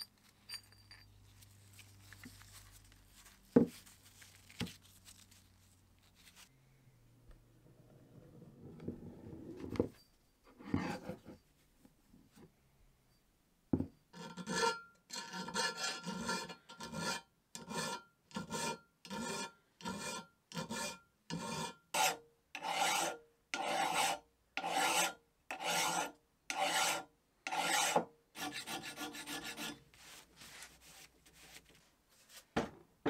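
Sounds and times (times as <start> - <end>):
hand files rasping on metal: 14.2 - 30.2.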